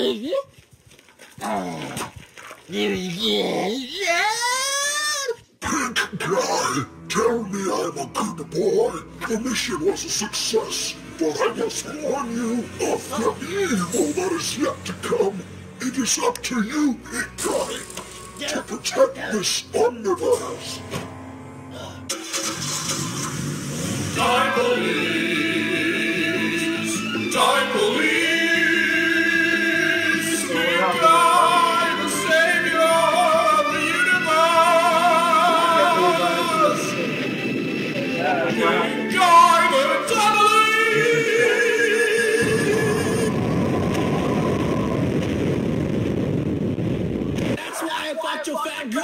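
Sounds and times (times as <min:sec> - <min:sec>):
fire rumbling and crackling: 0:17.4 - 0:18.8, 0:42.4 - 0:47.6
car engine starting and running: 0:22.1 - 0:24.2
music with singing: 0:24.1 - 0:43.7.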